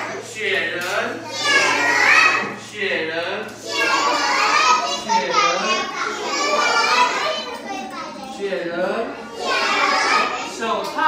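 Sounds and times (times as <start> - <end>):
children chanting in chorus: 1.2 - 2.6, 3.6 - 7.8, 9.2 - 10.6.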